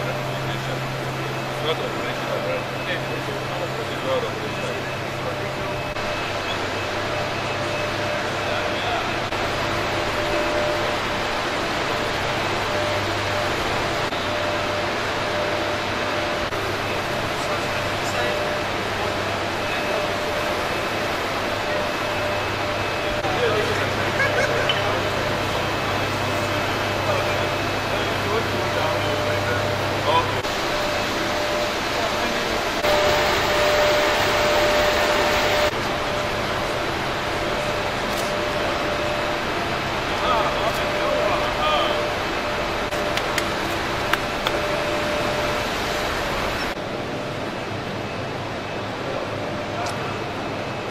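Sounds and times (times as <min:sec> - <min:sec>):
generator hall machinery hum: 0:00.0 - 0:50.9.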